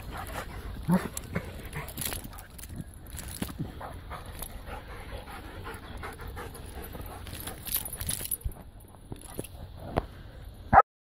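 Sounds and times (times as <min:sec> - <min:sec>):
dogs panting: 0:00.0 - 0:10.4.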